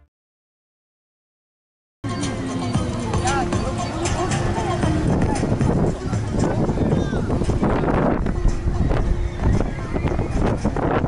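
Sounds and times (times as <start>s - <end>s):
background music: 2.0s - 11.0s
people's voices: 2.1s - 11.0s
wind rumble on microphone: 2.7s - 11.0s.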